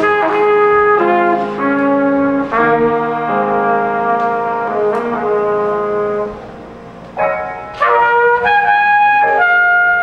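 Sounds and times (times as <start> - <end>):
grand piano: 0.0 - 10.0
trumpet: 0.0 - 10.0.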